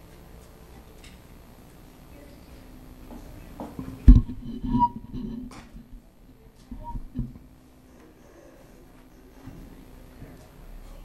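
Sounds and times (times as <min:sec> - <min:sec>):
knocks and rustling: 0:03.6 - 0:07.5
microphone handling thump: 0:03.8 - 0:05.6.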